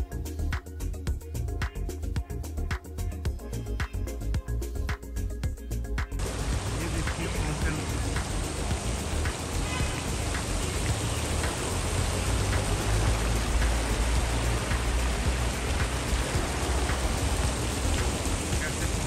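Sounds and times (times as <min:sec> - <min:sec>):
fountain water splashing into pool: 0:06.2 - 0:19.0.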